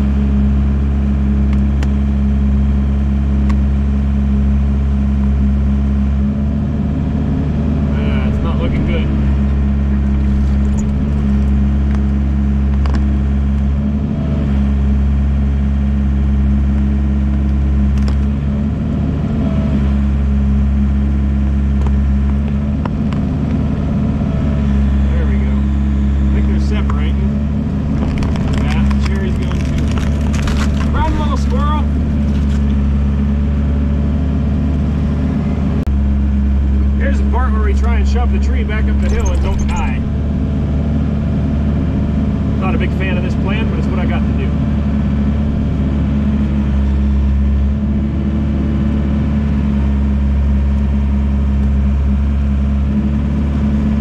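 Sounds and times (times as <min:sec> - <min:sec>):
hydraulics whining: 0:00.0 - 0:49.7
excavator diesel engine running: 0:00.0 - 0:54.0
wood cracking and snapping: 0:17.4 - 0:18.3, 0:27.8 - 0:32.9.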